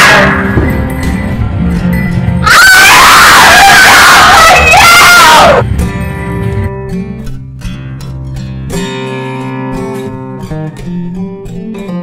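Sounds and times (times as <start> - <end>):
high-pitched scream: 0.0 - 0.4, 2.4 - 5.7.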